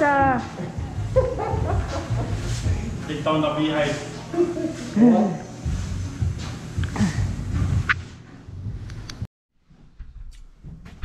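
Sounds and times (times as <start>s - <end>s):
man whooping and laughing: 4.3s - 5.5s.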